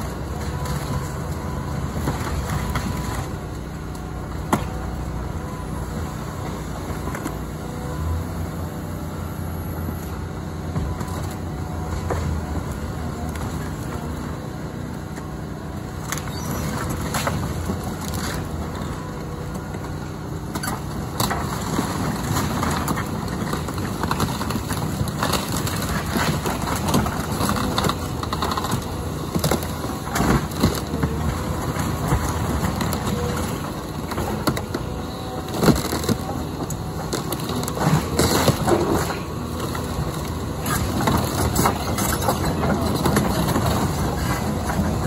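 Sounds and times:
diesel engine running: 0:00.0 - 0:45.0
wood cracking and snapping: 0:20.6 - 0:44.8.

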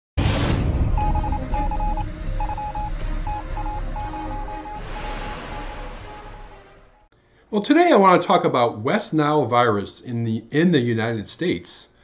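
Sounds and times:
low rumbling music: 0:00.2 - 0:07.1
electronic beep pulses: 0:01.0 - 0:07.1.

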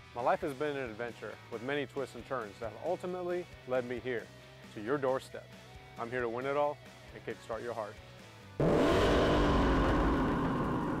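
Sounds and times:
car engine revving: 0:08.6 - 0:11.0.

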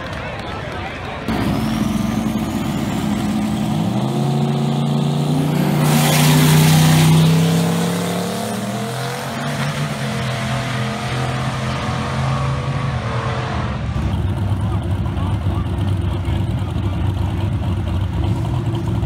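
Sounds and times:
drag racing cars accelerating: 0:01.2 - 0:19.0.

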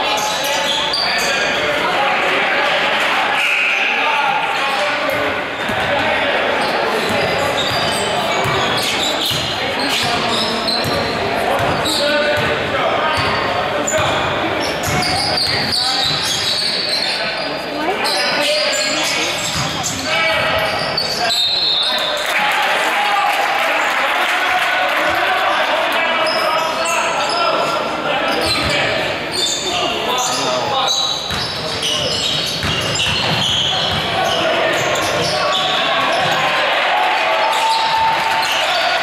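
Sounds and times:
people talking: 0:00.0 - 0:39.0.

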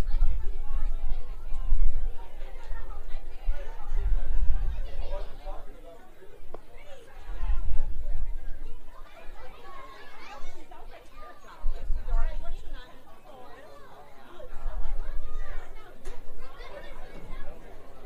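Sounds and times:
indistinct chatter: 0:00.0 - 0:18.0.

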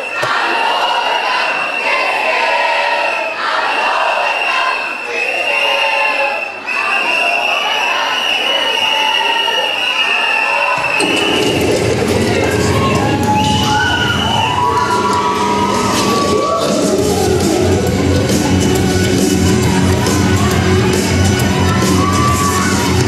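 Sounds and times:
teenagers shouting and cheering: 0:00.0 - 0:23.0.

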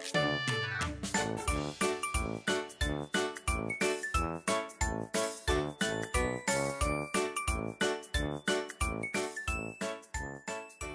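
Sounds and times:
cheerful children's music: 0:00.0 - 0:10.9.

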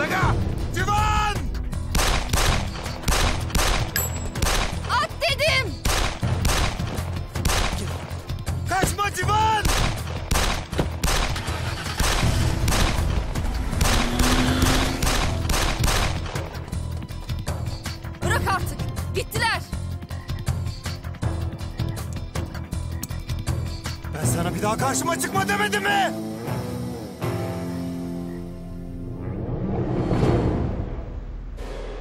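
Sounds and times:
background music: 0:00.0 - 0:32.0
pistol shots: 0:01.9 - 0:04.8, 0:05.8 - 0:08.0, 0:09.6 - 0:13.1, 0:13.8 - 0:16.5.

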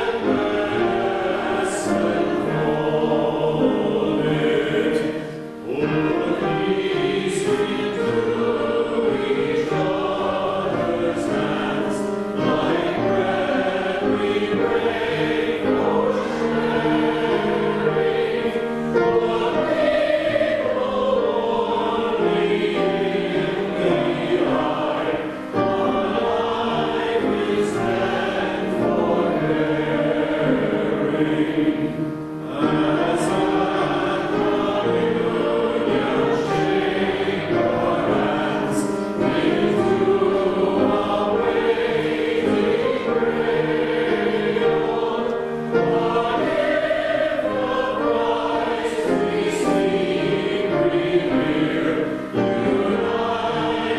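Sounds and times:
church choir singing: 0:00.0 - 0:53.9.

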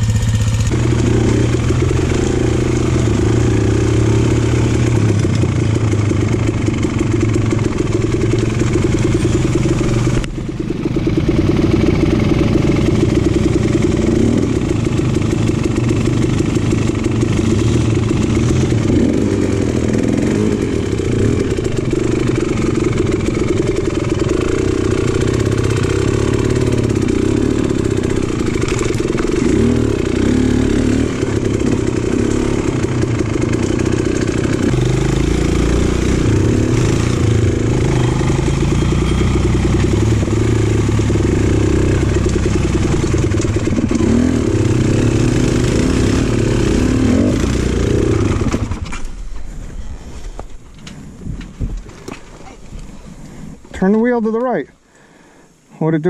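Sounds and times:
dirt bike engine running: 0:00.0 - 0:50.6.

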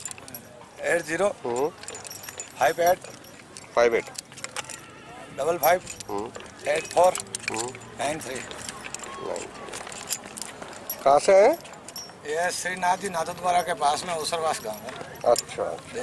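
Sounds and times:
metallic jingling: 0:00.0 - 0:16.0.

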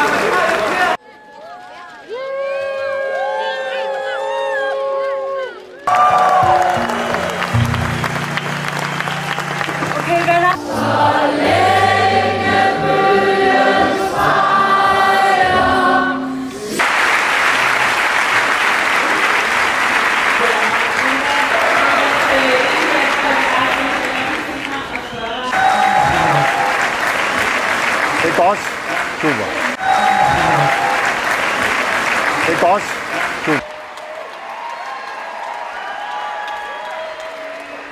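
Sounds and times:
applause and cheering: 0:00.0 - 0:10.9, 0:16.8 - 0:37.9
crowd singing: 0:09.8 - 0:16.8, 0:21.1 - 0:27.2.

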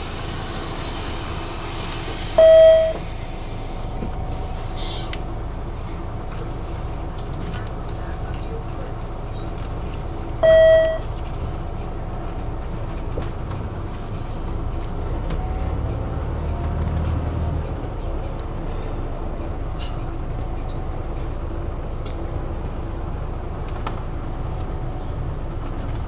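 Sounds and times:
city bus engine rumble: 0:00.0 - 0:26.0
loud electronic beep: 0:02.4 - 0:03.0, 0:10.4 - 0:11.0.

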